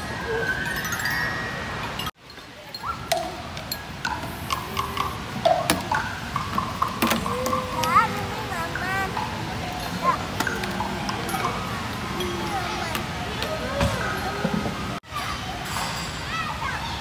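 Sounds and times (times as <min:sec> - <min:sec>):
children's voices: 0:02.6 - 0:17.0
plastic toys clicking: 0:03.1 - 0:11.6.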